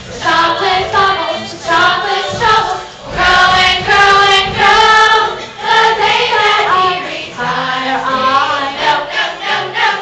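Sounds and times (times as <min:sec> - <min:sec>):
children's chorus singing: 0:00.0 - 0:10.0.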